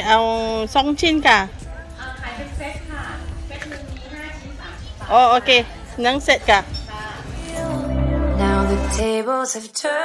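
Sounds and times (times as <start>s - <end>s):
woman speaking: 0.0s - 7.3s.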